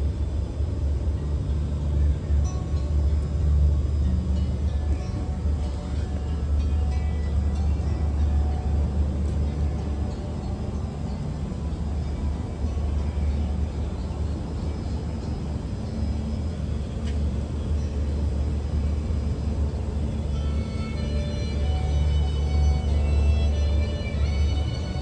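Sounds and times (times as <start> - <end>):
faint background music: 0.0 - 25.0
steady low rumble: 0.0 - 25.0.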